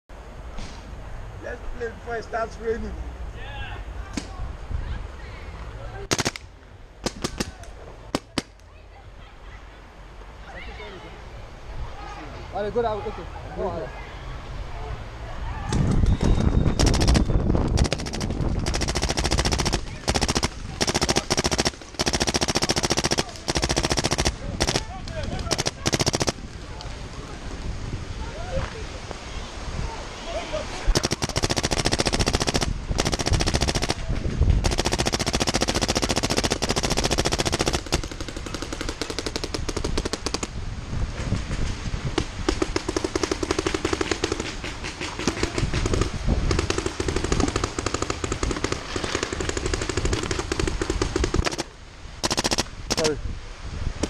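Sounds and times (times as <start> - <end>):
paintball markers firing rapidly: 6.1 - 6.4, 16.8 - 26.4, 30.9 - 40.5, 42.5 - 53.1.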